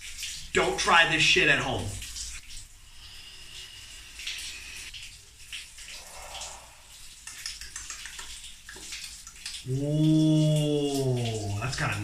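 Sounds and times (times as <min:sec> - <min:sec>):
running water: 0:00.0 - 0:12.0.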